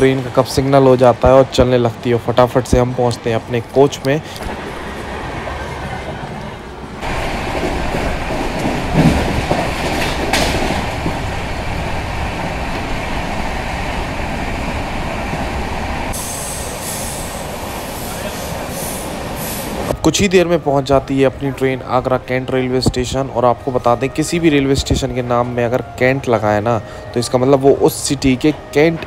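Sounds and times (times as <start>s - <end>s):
train wheels rumbling on track: 0.0s - 29.0s.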